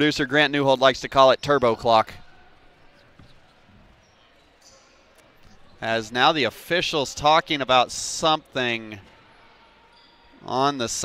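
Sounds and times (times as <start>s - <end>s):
gymnasium ambience: 0.0s - 11.0s.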